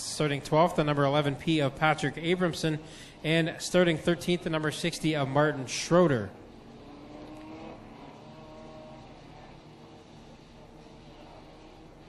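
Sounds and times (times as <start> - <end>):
distant race car engines droning: 0.0 - 12.0.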